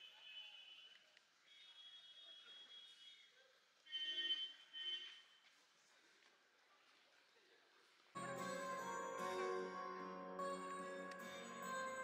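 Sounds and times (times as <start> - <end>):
high-pitched steady tone: 8.2 - 12.0.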